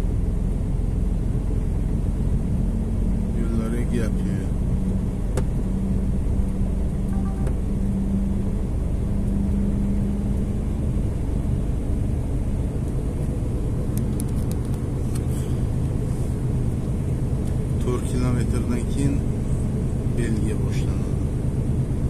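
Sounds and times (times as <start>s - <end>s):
truck engine and road rumble: 0.0s - 22.0s.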